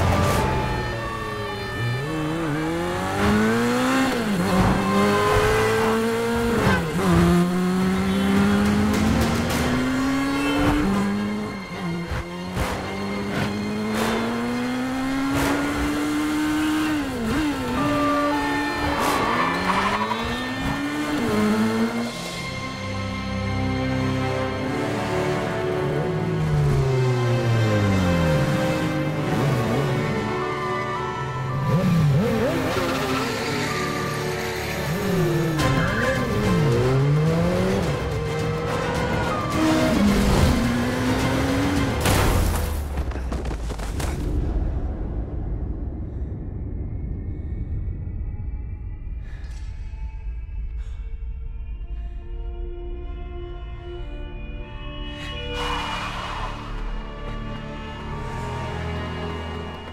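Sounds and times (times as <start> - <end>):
background music: 0.0 - 42.8, 48.0 - 59.9
motorcycle engine revving: 1.8 - 22.1.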